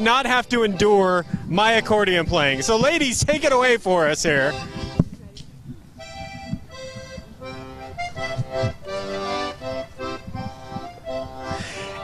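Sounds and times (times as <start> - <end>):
button accordion playing tune: 0.0 - 5.1, 6.0 - 12.0.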